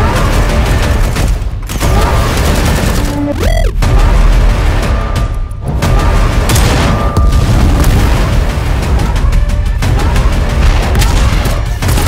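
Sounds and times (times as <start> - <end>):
action trailer music: 0.0 - 12.0
booming explosions: 0.2 - 12.0.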